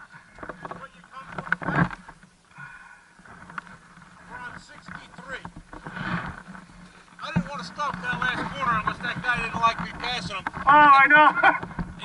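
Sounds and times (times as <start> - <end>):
snowmobile engines idling: 2.5 - 12.0.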